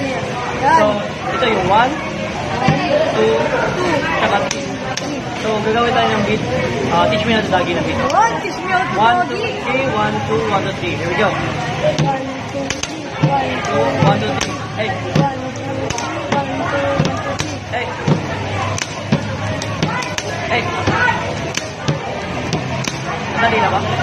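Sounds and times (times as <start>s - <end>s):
pens drumming on tabletop: 12.0s - 23.1s.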